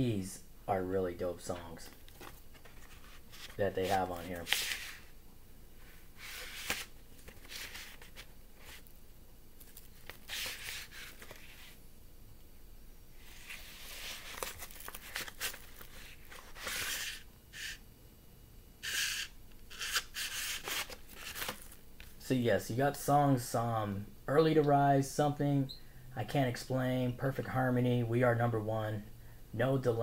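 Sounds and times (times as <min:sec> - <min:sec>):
record sleeve rustling: 0:01.4 - 0:05.2, 0:05.8 - 0:09.0, 0:09.6 - 0:11.8, 0:13.2 - 0:17.8, 0:18.8 - 0:22.2.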